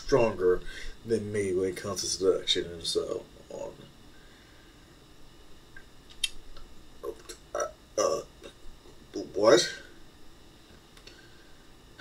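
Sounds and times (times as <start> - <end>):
sharp clicks: 5.8 - 6.7.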